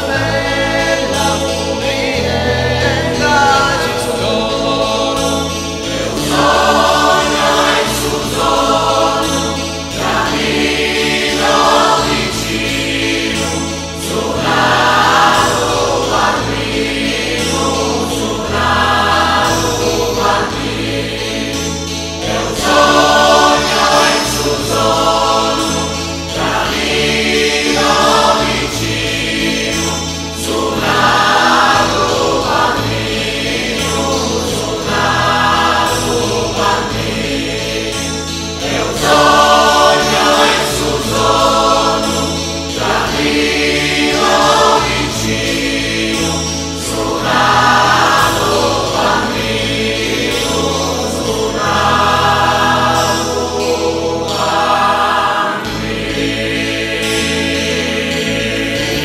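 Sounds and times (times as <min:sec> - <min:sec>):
acoustic guitar: 0:00.0 - 0:59.0
mixed choir singing slowly: 0:00.0 - 0:59.0.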